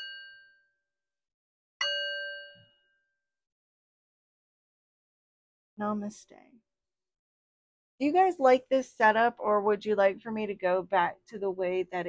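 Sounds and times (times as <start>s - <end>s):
small metal bell ringing: 0.0s - 0.6s, 1.8s - 2.9s.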